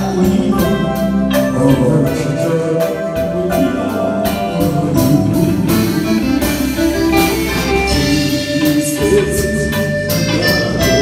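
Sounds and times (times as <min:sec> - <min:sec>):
man singing into a microphone: 0:00.0 - 0:06.2, 0:07.7 - 0:11.0
live band playing: 0:00.0 - 0:11.0.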